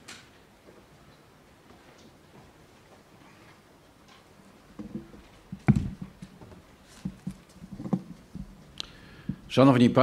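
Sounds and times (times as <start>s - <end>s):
microphone handling thumps: 4.8s - 8.6s.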